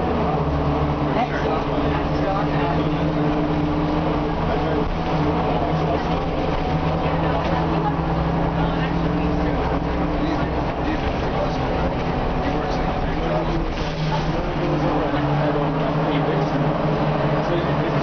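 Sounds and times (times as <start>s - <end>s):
bus diesel engine running: 0.0s - 18.0s
road noise: 0.0s - 18.0s.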